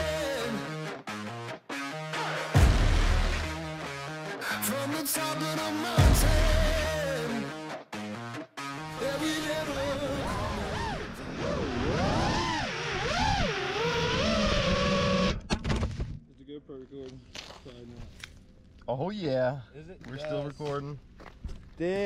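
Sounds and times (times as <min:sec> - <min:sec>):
drone motors whining: 0:09.8 - 0:15.5.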